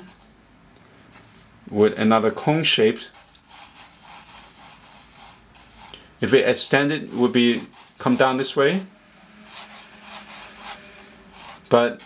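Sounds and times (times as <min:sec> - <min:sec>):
pencil scratching on paper: 0:03.1 - 0:05.9, 0:06.8 - 0:12.0.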